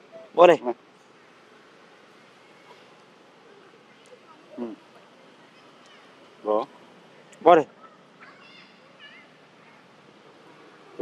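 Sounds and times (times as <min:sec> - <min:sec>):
quiet outdoor background: 0:00.0 - 0:11.0.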